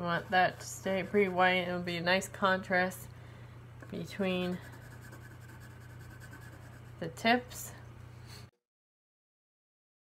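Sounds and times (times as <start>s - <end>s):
pencil scratching on paper: 0.0s - 1.7s, 4.3s - 7.2s
low steady hum: 0.0s - 8.5s.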